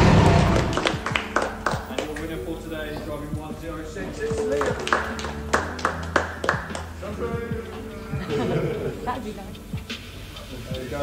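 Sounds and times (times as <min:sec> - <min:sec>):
hand claps: 0:00.4 - 0:02.4, 0:04.2 - 0:07.0.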